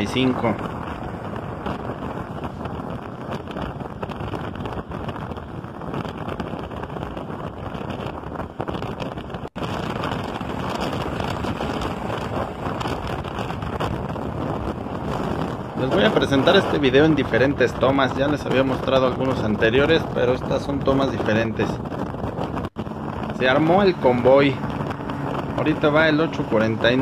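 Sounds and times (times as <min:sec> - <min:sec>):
car road and traffic noise: 0:00.0 - 0:21.0, 0:21.8 - 0:27.0
wind rushing over microphone: 0:00.0 - 0:27.0.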